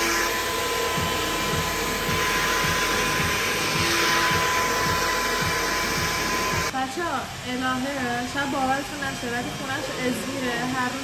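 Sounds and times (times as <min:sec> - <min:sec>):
hair dryer blowing: 0:00.0 - 0:11.0.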